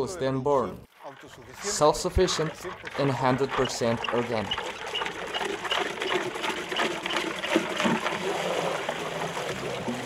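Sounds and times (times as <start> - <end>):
liquid sloshing and splashing: 0.9 - 10.0
wooden pole stirring liquid: 1.0 - 10.0.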